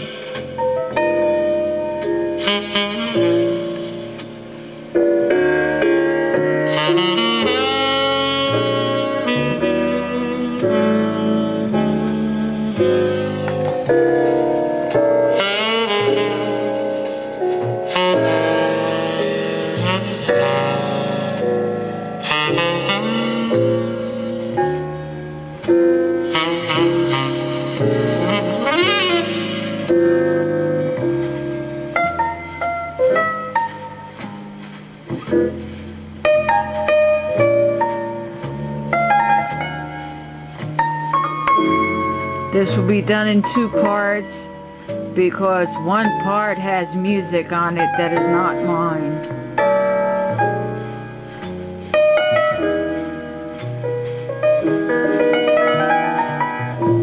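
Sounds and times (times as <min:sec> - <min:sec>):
jazz music from cassette: 0:00.0 - 0:57.0.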